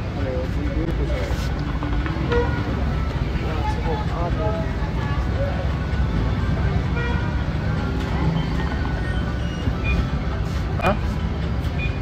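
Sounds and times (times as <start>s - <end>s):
faint voices: 0.0s - 12.0s
low traffic rumble: 0.0s - 12.0s.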